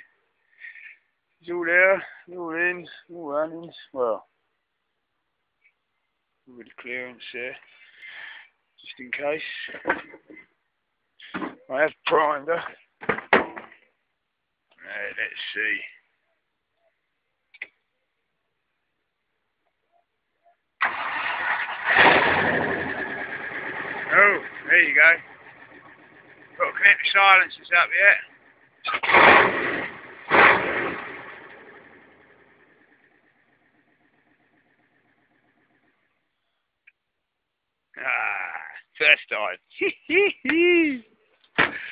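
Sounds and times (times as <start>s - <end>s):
engine firing up: 20.8s - 36.0s.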